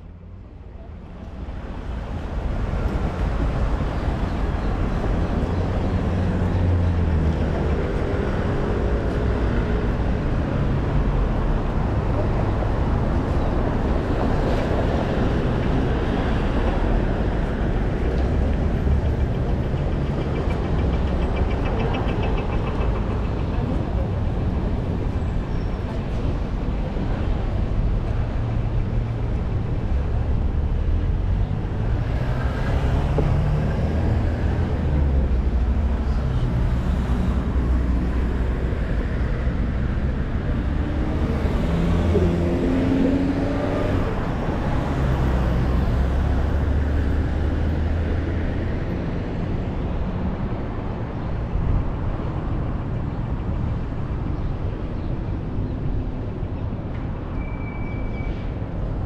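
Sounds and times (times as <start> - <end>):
traffic rumble: 0.0 - 59.0
cars driving past: 1.5 - 59.0.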